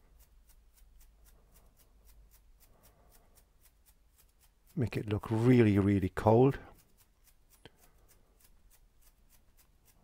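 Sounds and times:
paintbrush strokes on canvas: 0.0 - 10.0.

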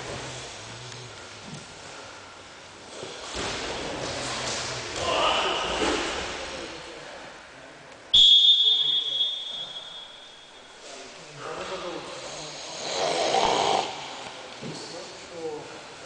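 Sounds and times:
voices: 3.8 - 16.0.

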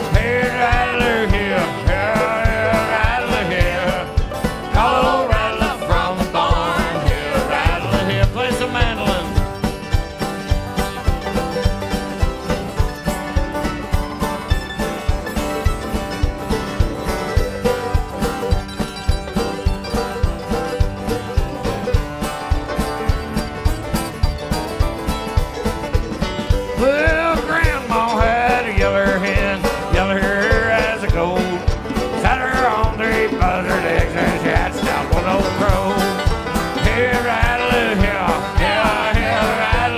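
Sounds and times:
acoustic guitars strumming: 0.0 - 39.9
banjo: 0.0 - 39.9
drum kit beat: 0.0 - 39.9
upright bass: 0.0 - 39.9.

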